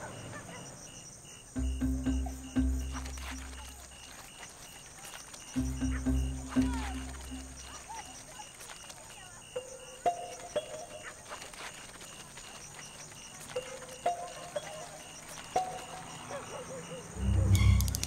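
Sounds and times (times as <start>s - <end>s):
faint pulsing chirp: 0.0s - 18.0s
two-note calls: 1.6s - 4.1s, 5.6s - 7.9s, 17.0s - 18.0s
small clicks: 7.2s - 15.9s
loud low rumble: 17.2s - 18.0s.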